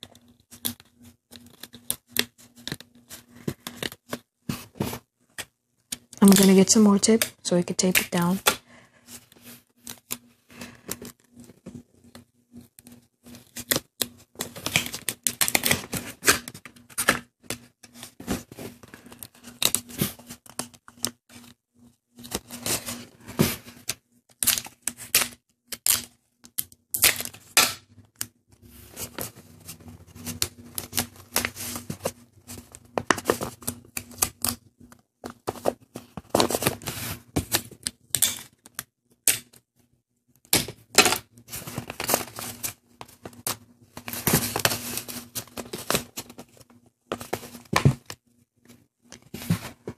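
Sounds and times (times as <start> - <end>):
paper rustling and crinkling: 35.2 - 37.7, 41.5 - 48.1.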